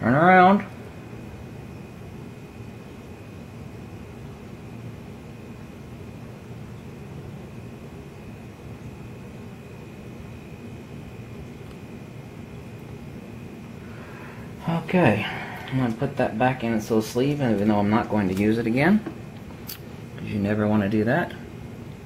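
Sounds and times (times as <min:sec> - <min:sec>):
faint high whine: 0:00.0 - 0:22.0.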